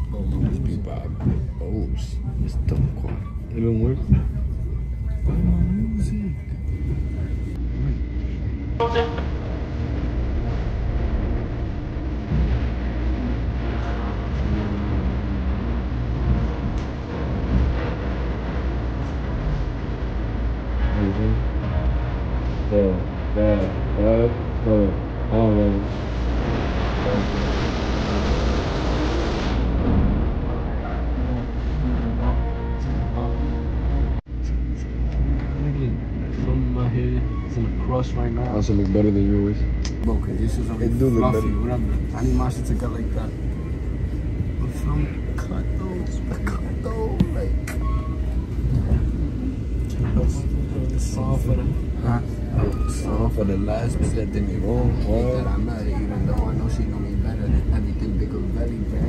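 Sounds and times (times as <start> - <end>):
person's voice: 0.0 - 4.2, 5.3 - 6.5, 14.4 - 15.4, 39.9 - 43.3, 44.6 - 47.8, 49.9 - 59.0
thin high whine: 0.0 - 59.0
train rumble inside rail car: 0.0 - 59.0
faint voice: 14.4 - 15.6, 27.0 - 28.4, 31.2 - 33.5, 44.6 - 47.8.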